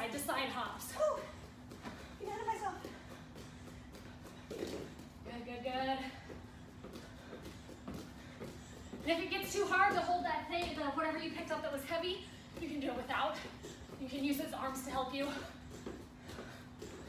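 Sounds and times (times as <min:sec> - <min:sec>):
faint steady hum: 0:00.0 - 0:17.0
bare feet thudding on rubber mats: 0:00.5 - 0:17.0.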